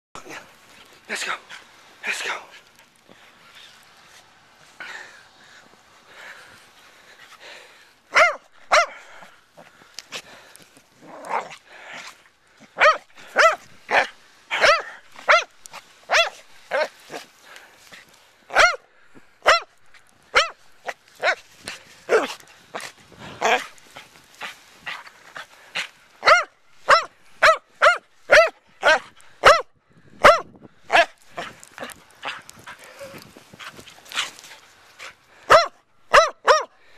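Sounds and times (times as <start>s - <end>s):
dog barking: 8.1s - 9.0s, 12.8s - 15.5s, 16.1s - 17.2s, 18.5s - 18.8s, 19.4s - 19.7s, 20.3s - 21.4s, 22.1s - 22.4s, 26.2s - 31.5s, 35.5s - 36.8s.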